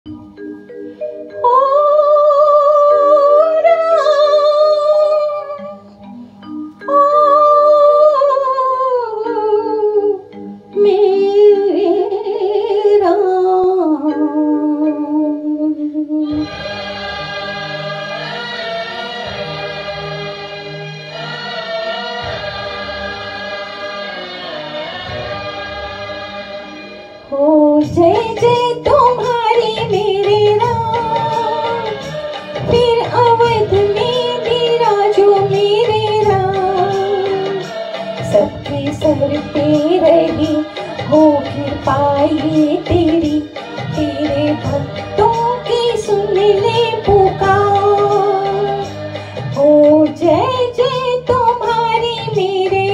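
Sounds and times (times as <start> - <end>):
karaoke backing track: 0.1 - 52.9
woman singing with vibrato: 1.3 - 5.8, 6.8 - 19.5, 27.2 - 52.9
choir-like chords: 1.3 - 51.2.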